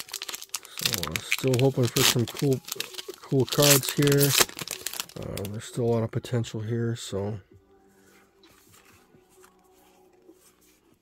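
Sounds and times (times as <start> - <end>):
trading cards rustling: 0.0 - 5.6.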